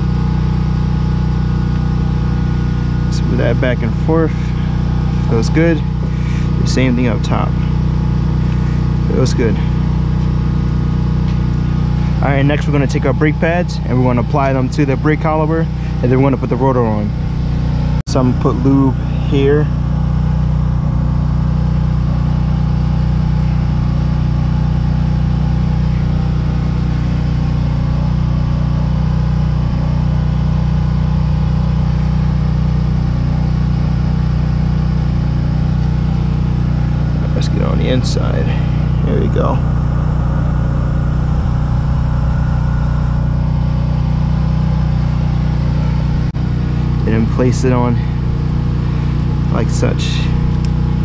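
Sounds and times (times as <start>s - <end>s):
engine idling drone: 0.0s - 51.0s.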